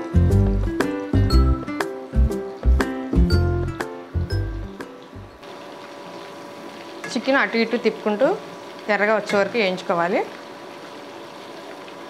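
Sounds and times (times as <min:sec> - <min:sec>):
background music: 0:00.0 - 0:05.4
chicken deep-frying in oil: 0:00.0 - 0:12.0.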